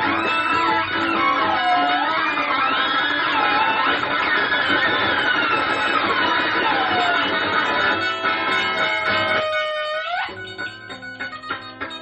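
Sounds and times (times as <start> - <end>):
improvised electric guitar music: 0.0 - 12.0.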